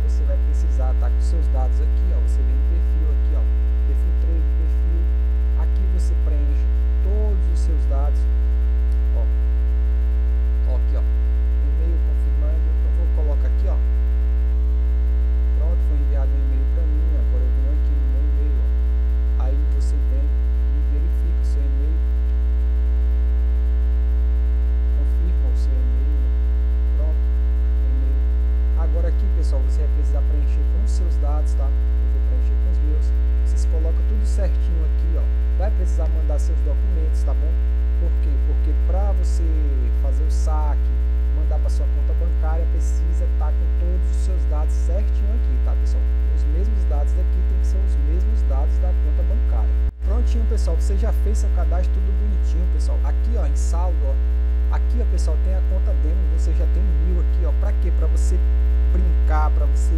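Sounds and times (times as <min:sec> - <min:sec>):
electrical mains hum: 0:00.0 - 0:59.9.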